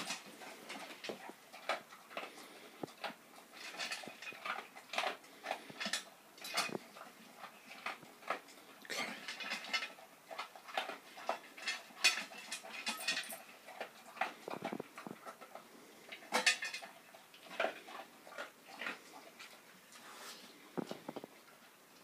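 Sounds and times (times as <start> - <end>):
dog crunching food: 0.0 - 22.0.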